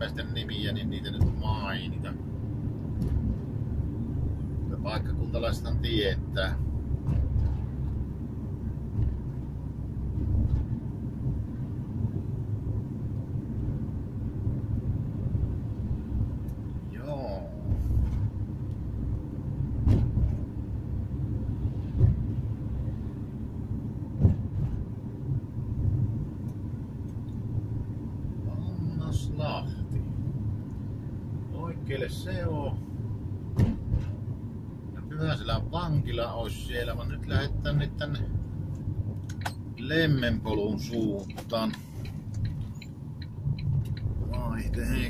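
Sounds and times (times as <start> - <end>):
car road and engine rumble: 0.0 - 45.0.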